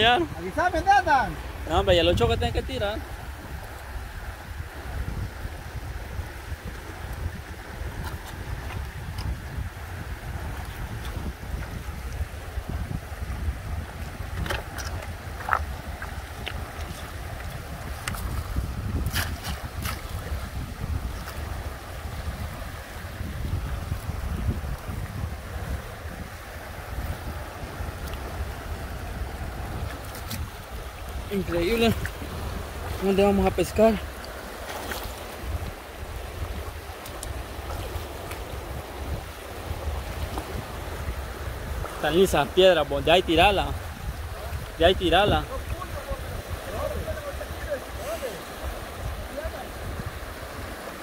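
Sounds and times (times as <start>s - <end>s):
river rushing over rocks: 0.0s - 51.0s
wind buffeting microphone: 0.0s - 51.0s.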